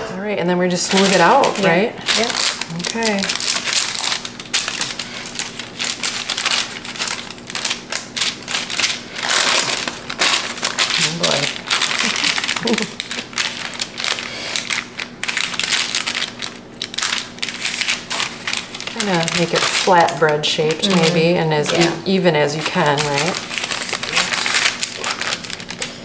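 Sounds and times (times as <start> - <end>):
parchment paper crinkling: 0.7 - 26.0.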